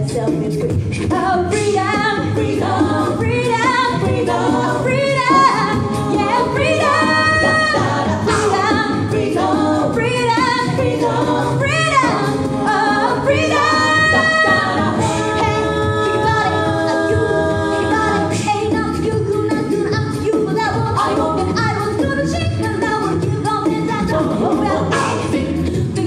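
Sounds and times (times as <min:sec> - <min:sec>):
backing voices singing: 0:00.0 - 0:21.8, 0:23.7 - 0:26.0
woman singing lead vocal: 0:00.0 - 0:26.0.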